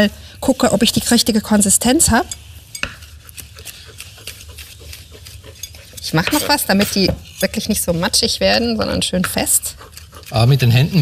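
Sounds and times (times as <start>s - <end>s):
knife chopping on wooden board: 2.8s - 7.4s, 9.1s - 10.3s.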